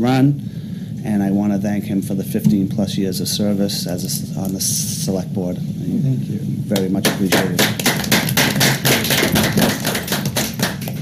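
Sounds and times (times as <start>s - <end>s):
people clapping: 6.8s - 11.0s.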